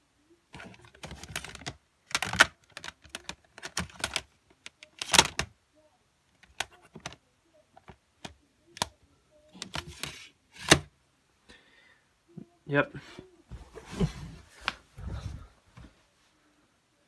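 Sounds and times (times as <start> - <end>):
plastic cases clicking together: 0.6 - 5.5, 6.4 - 7.2.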